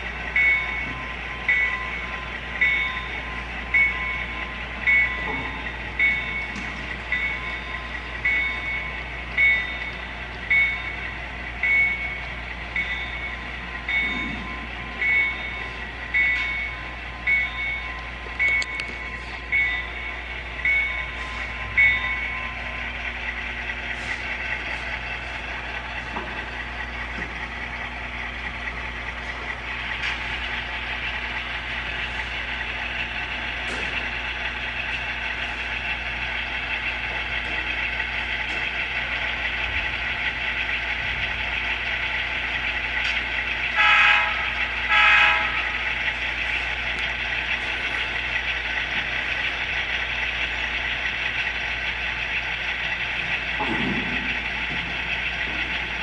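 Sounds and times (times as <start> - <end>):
diesel engine running: 0.0 - 56.0
locomotive bell dinging: 0.0 - 56.0
low hum: 0.0 - 56.0
horn blasts: 43.7 - 45.9.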